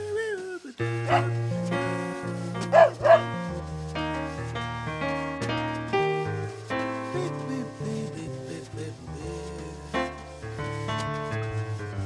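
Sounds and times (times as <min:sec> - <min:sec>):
music of sustained notes: 0:00.8 - 0:12.0
short dog barks: 0:01.1 - 0:01.3, 0:02.7 - 0:03.2.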